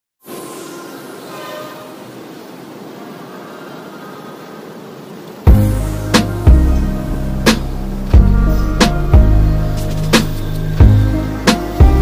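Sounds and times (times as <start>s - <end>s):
electric train rushing past: 0.2s - 12.0s
faint whining tones: 0.2s - 12.0s.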